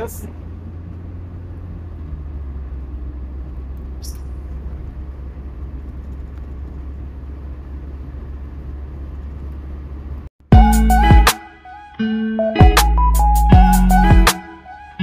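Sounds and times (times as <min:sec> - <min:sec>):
car driving rumble: 0:00.0 - 0:10.3.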